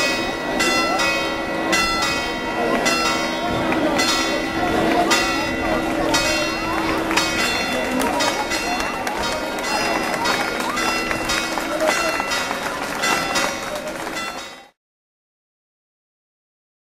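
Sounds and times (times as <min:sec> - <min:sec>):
church bells pealing: 0:00.0 - 0:14.8
crowd chatter: 0:00.0 - 0:14.8.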